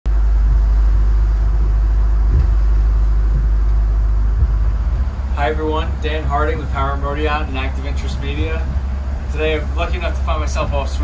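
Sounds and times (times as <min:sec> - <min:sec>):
motorboat engine rumble: 0:00.0 - 0:11.0.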